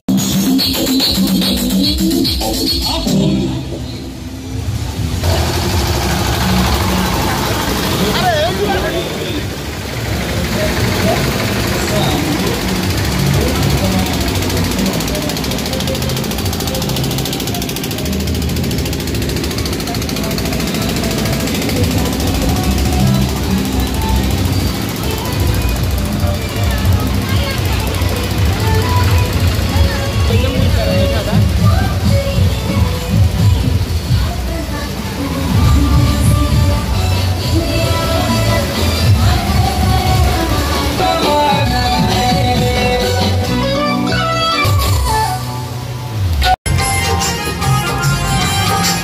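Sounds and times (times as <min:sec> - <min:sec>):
loud distorted bass-heavy music: 0:00.1 - 0:09.0, 0:09.7 - 0:34.5, 0:35.4 - 0:49.0
vehicle engine running: 0:00.2 - 0:43.6
crowd voices: 0:00.5 - 0:49.0.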